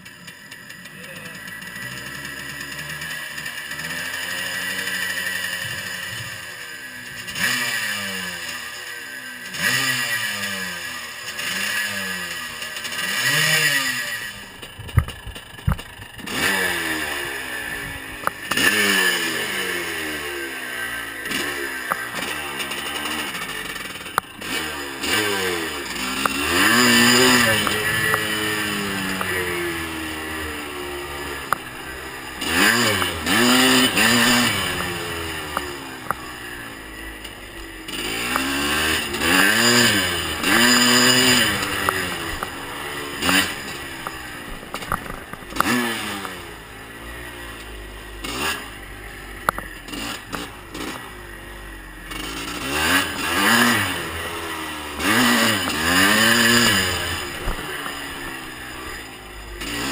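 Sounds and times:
two-stroke motorcycle engine revving: 0:00.0 - 0:59.9.

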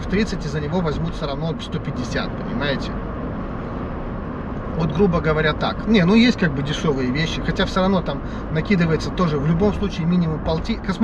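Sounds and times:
road noise inside car: 0:00.0 - 0:11.0.

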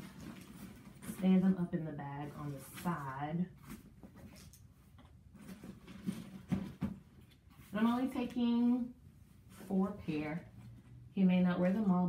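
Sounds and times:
fabric rustling: 0:00.0 - 0:04.7.

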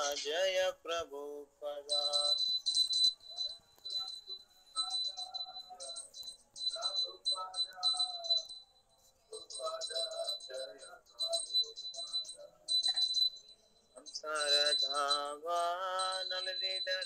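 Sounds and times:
small hand bell ringing: 0:01.8 - 0:17.0.

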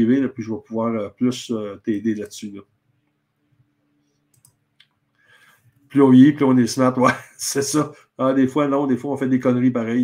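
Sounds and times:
man speaking: 0:00.0 - 0:02.7, 0:05.9 - 0:10.0
faint clicks: 0:04.0 - 0:05.9.

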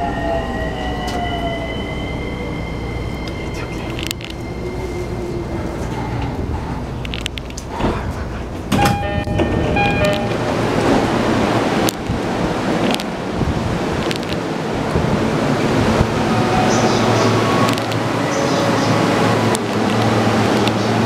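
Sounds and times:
train doors opening: 0:00.2 - 0:21.0
platform noise: 0:08.7 - 0:12.2
short electronic chime: 0:08.8 - 0:10.4.

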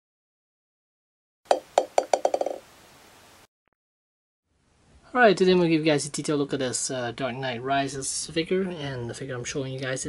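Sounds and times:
hard ball bouncing: 0:01.5 - 0:02.6.

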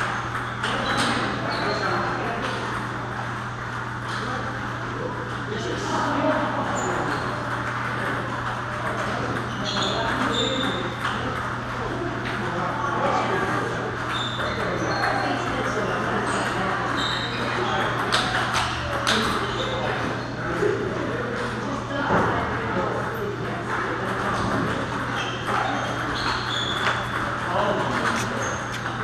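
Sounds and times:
table tennis balls clicking: 0:00.0 - 0:01.4, 0:06.2 - 0:12.4, 0:17.2 - 0:19.6
background chatter: 0:00.0 - 0:29.0.

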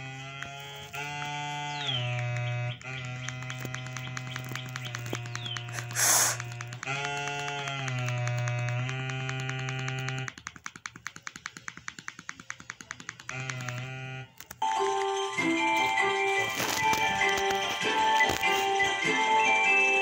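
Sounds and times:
short loud hiss: 0:05.8 - 0:06.4
slow synthesizer tune: 0:14.6 - 0:20.0.

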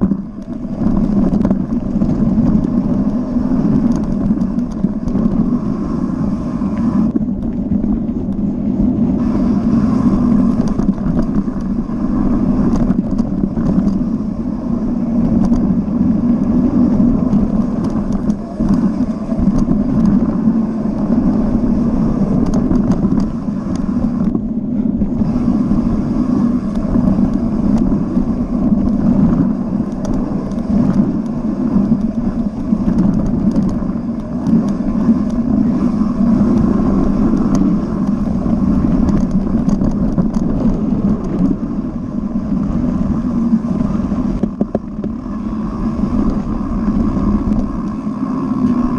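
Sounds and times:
bike clicking and rattling: 0:00.0 - 0:48.9
wind rushing on microphone: 0:00.0 - 0:48.9.

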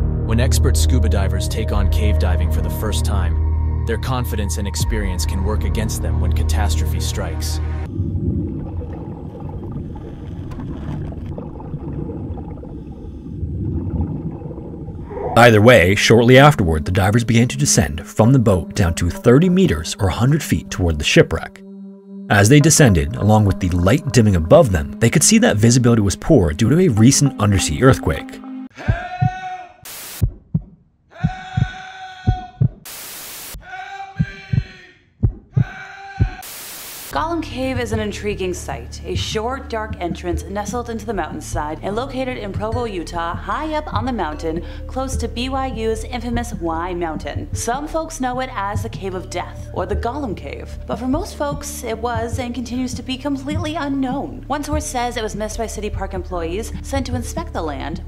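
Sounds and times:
underwater water rumble: 0:07.8 - 0:15.5
heartbeat thumps: 0:28.8 - 0:29.4, 0:30.2 - 0:32.9, 0:34.2 - 0:36.4, 0:42.5 - 0:44.1, 0:51.0 - 0:55.5
white noise static bursts: 0:29.9 - 0:30.3, 0:32.9 - 0:33.6, 0:36.4 - 0:37.2.

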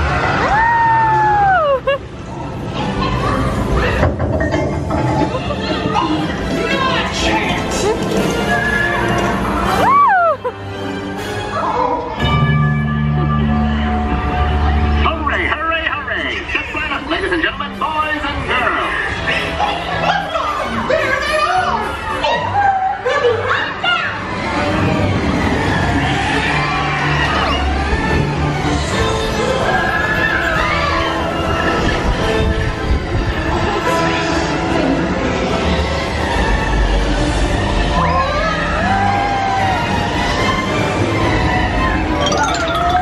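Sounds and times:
music: 0:02.3 - 0:43.0.

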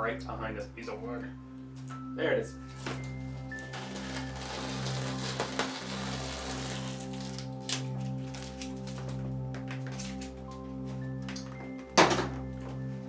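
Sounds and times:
background music with held notes: 0:00.0 - 0:13.0
masking tape peeling off canvas: 0:02.7 - 0:10.5.

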